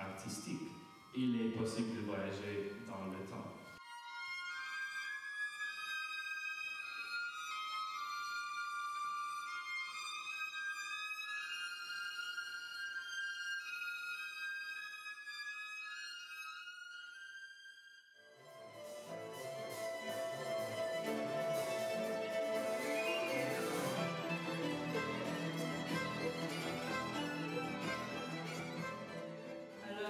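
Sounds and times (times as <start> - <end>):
solo violin: 0.0 - 30.0
chamber ensemble chords: 18.6 - 29.8.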